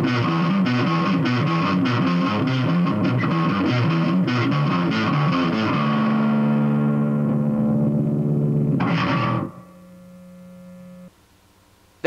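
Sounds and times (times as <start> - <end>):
electric bass guitar: 0.0 - 11.1.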